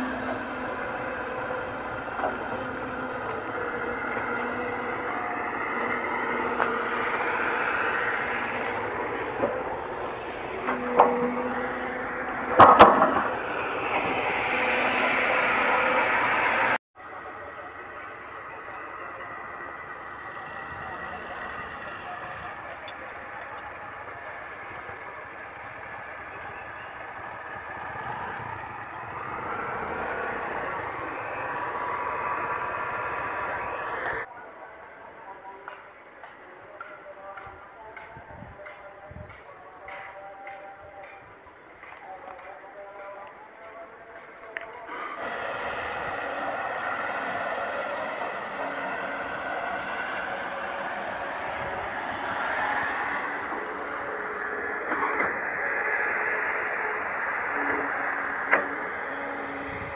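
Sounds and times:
motorcycle engine revving: 0.0 - 16.8, 19.4 - 34.3
sharp knocks: 12.5 - 13.4.

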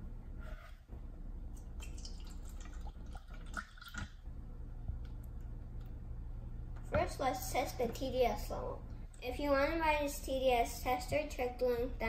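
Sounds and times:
water pouring into plastic cups: 1.7 - 4.2.

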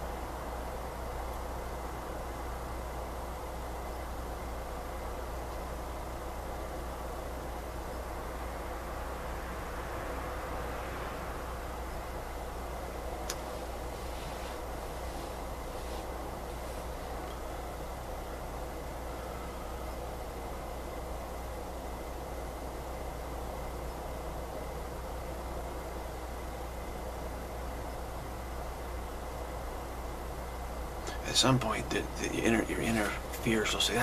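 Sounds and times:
constant low hum: 0.0 - 34.0
steady background hiss: 0.0 - 34.0.

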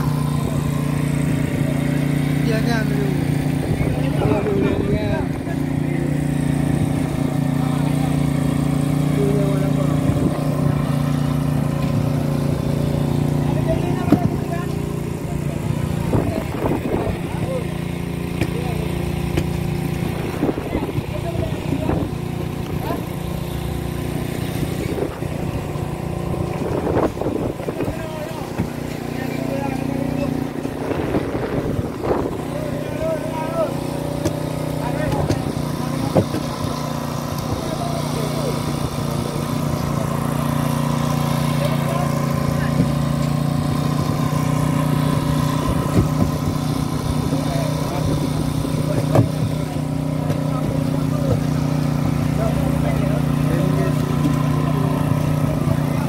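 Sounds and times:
boat engine droning: 0.0 - 56.0.

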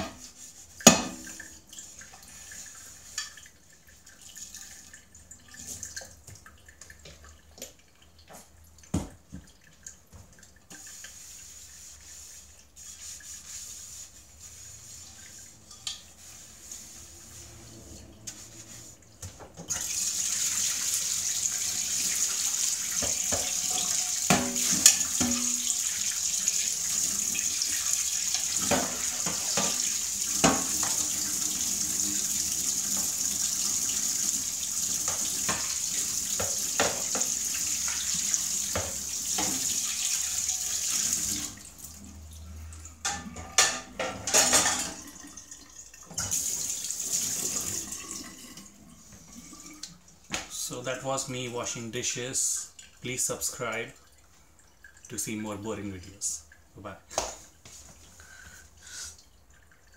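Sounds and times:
dishes clattering: 23.0 - 25.6, 43.0 - 45.0
tap running into steel sink: 23.0 - 25.7.

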